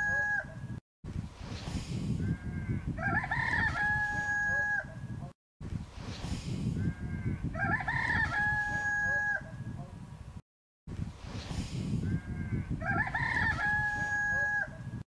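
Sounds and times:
rooster crowing: 3.0s - 4.9s, 7.0s - 9.5s, 12.5s - 14.8s.

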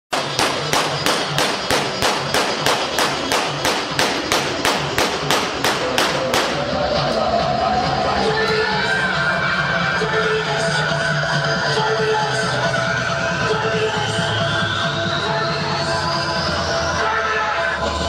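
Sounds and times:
drum beating: 0.1s - 6.8s.

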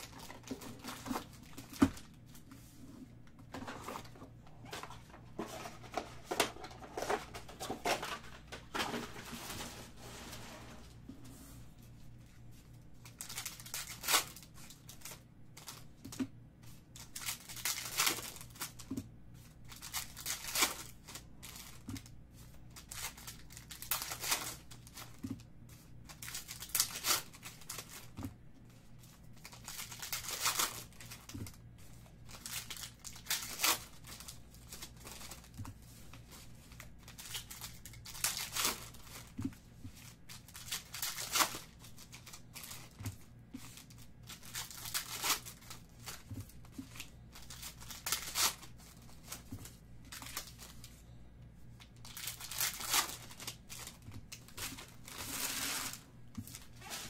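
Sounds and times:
low steady hum: 0.0s - 57.0s
foil wrappers tearing and crinkling: 13.0s - 15.8s, 17.0s - 18.8s, 19.7s - 22.1s, 22.7s - 25.2s, 26.1s - 28.0s, 29.4s - 31.5s, 32.3s - 35.6s, 36.7s - 39.4s, 40.0s - 50.9s, 52.0s - 57.0s.

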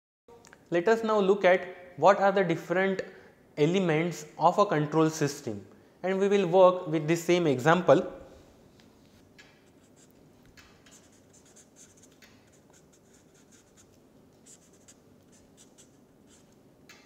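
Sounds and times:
marker writing on paper: 9.4s - 16.6s.

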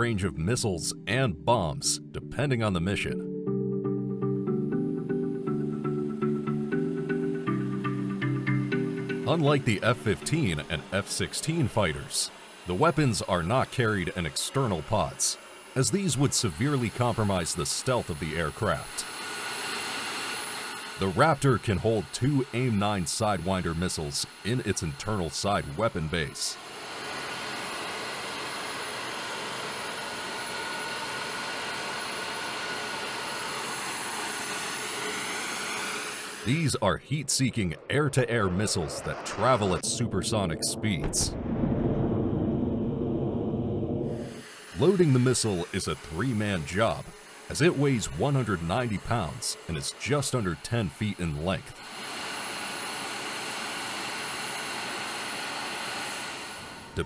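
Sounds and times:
jet engine rushing with whine: 8.7s - 57.0s.

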